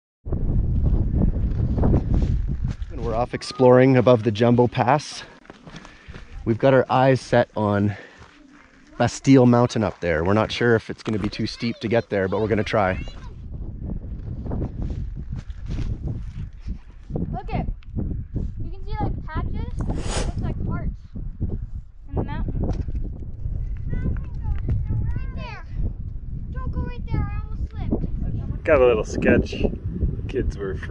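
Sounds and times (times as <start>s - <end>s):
wind buffeting microphone: 0.2s - 4.7s, 11.1s - 30.9s.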